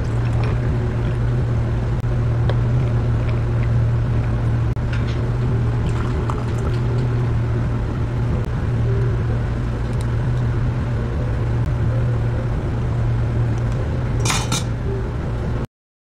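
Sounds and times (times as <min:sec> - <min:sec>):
low machine hum: 0:00.0 - 0:15.7
dishes and cutlery clinking: 0:14.2 - 0:14.8.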